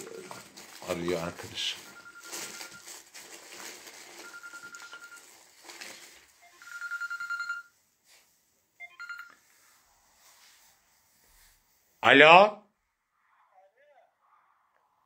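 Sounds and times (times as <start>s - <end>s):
phone ringtone: 1.7s - 3.0s, 4.1s - 5.4s, 6.4s - 7.8s, 8.8s - 9.5s.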